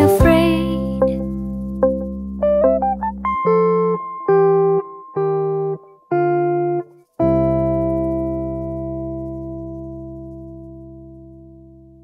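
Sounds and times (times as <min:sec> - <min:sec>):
guitar chord with bass ringing: 0:00.0 - 0:12.0.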